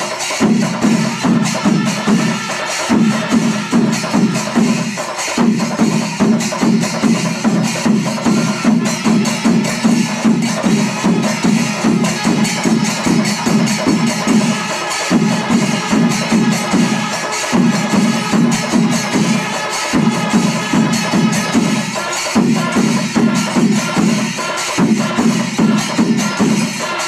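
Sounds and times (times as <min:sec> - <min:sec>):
drum and cymbal ensemble: 0:00.0 - 0:27.0.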